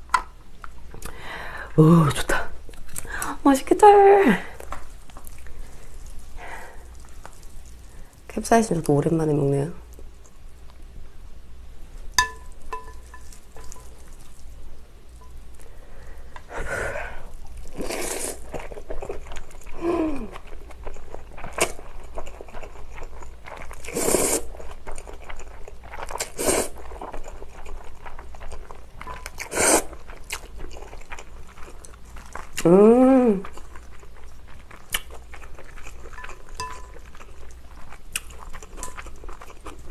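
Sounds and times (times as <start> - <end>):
person chewing: 4.6 - 8.3, 12.2 - 32.8, 33.4 - 39.9
person slurping noodles: 17.8 - 18.4, 23.9 - 24.5, 26.2 - 26.8, 29.4 - 29.9.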